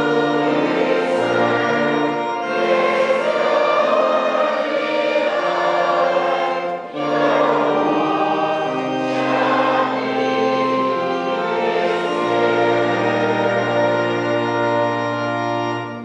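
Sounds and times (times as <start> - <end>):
choir and congregation singing a hymn: 0.0 - 15.9.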